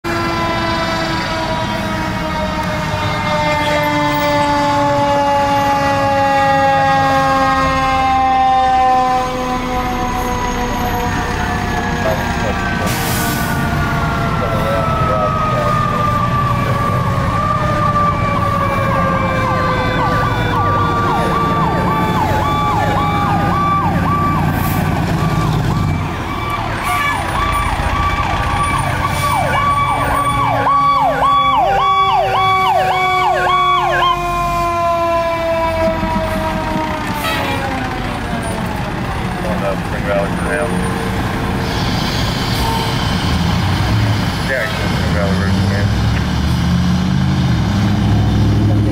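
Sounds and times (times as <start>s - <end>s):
diesel engines rumbling: 0.0s - 48.9s
siren yelp: 0.1s - 41.1s
siren falling tone: 0.2s - 39.4s.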